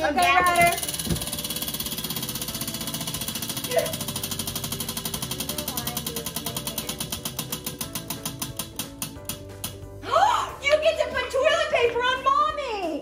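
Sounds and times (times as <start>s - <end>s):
prize wheel clicking: 0.1s - 9.8s.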